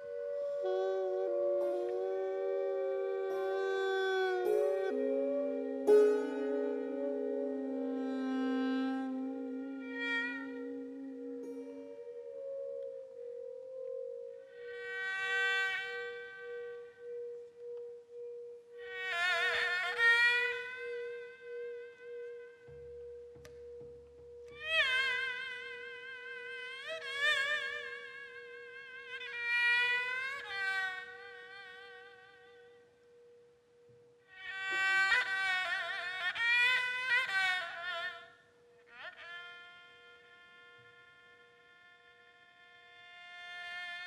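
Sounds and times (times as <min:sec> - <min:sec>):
two-string fiddle sliding notes: 0:00.0 - 0:28.2.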